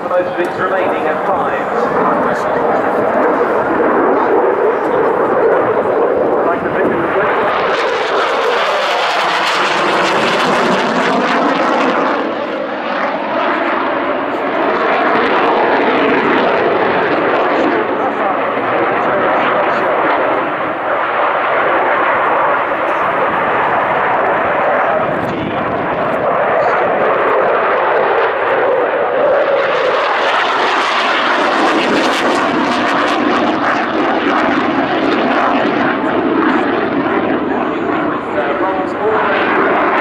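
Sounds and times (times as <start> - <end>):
loud jet engine roar: 0.0 - 40.0.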